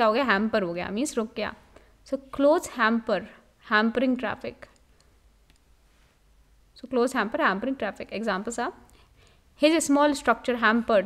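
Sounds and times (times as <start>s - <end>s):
woman's voice: 0.0s - 4.7s, 6.8s - 8.8s, 9.6s - 11.0s
computer mouse clicks: 4.6s - 5.7s.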